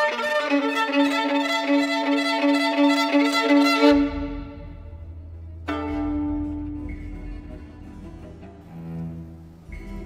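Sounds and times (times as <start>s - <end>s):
violin-led string music: 0.0s - 10.0s.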